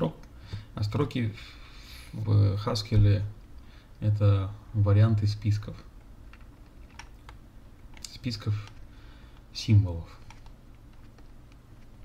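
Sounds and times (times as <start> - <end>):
keyboard keys clicking: 6.3 - 8.8.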